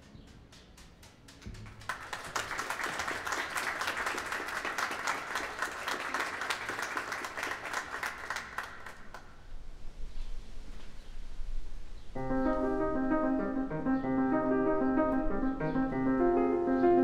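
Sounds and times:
audience applauding: 1.4s - 9.3s.

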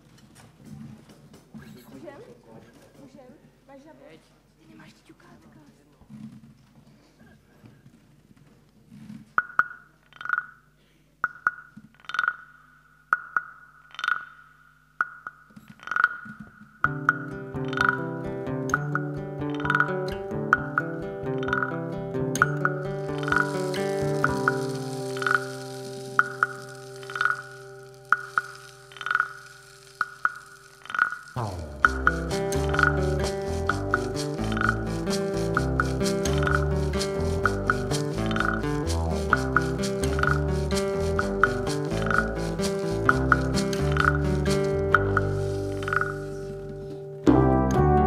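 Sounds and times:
wooden percussion knocking beat: 11.2s - 12.5s, 13.1s - 18.1s, 18.7s - 21.8s, 22.4s - 29.4s, 30.0s - 46.4s
cymbal hiss: 23.0s - 46.7s
sustained chords: 31.4s - 48.0s.

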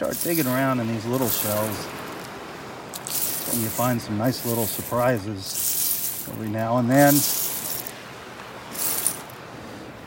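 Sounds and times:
seashells rustling and clattering: 0.0s - 8.0s, 8.6s - 9.5s.

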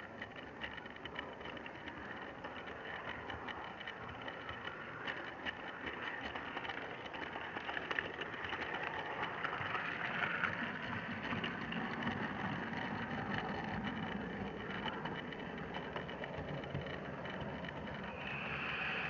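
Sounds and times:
model train rolling on track: 0.0s - 19.0s.

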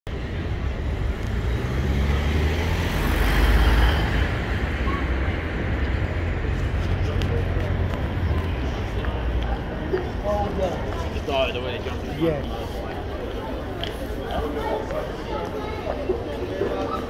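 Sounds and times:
road traffic: 0.1s - 17.0s
vehicle engine rumble: 0.1s - 17.0s
voices of passers-by: 0.1s - 17.0s.

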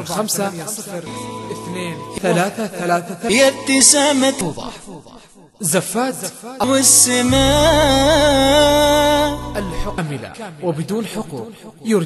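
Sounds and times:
man reading out digits: 0.0s - 4.8s, 6.6s - 12.0s.

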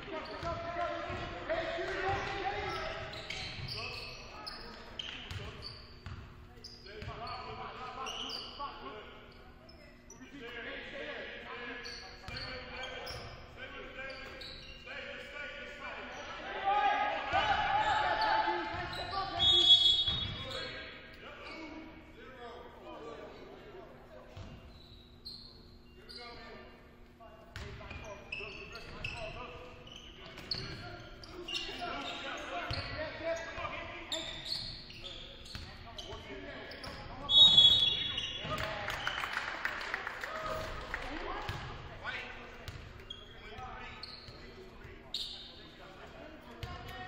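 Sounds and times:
sneakers squeaking: 0.0s - 10.5s, 11.6s - 16.5s, 17.3s - 39.4s, 40.4s - 47.0s
players calling out: 14.1s - 20.8s
referee whistle: 19.0s - 20.7s, 37.2s - 38.4s.

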